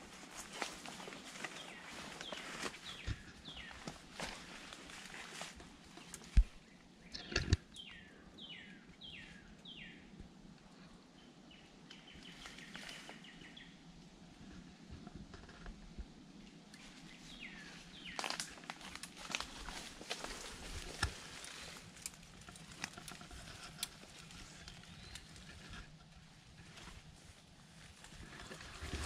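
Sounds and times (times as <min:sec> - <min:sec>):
footsteps in leafy undergrowth: 0:00.0 - 0:06.6, 0:17.3 - 0:25.7
songbird singing: 0:00.4 - 0:29.0.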